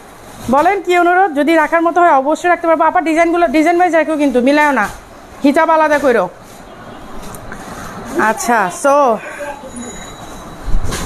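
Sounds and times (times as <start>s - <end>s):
person speaking: 7.4s - 10.0s.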